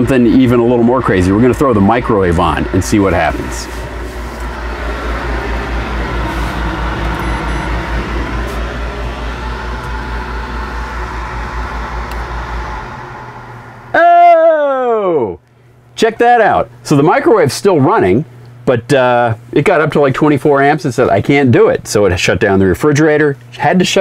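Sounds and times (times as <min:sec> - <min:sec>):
electrical hum with low pulse: 0:00.0 - 0:24.0
tone sliding down in pitch: 0:02.0 - 0:15.2.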